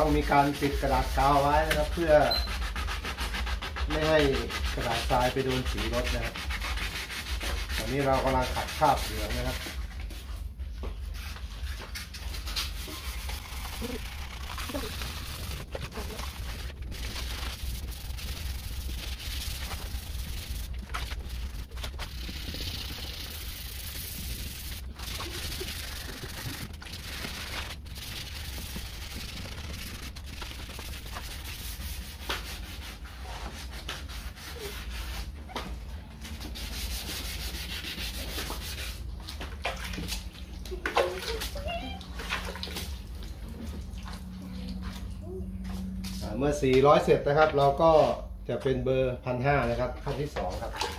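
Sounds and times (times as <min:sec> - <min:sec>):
wet sanding scrubbing: 0:00.0 - 0:10.4, 0:11.0 - 0:35.4, 0:36.2 - 0:39.4.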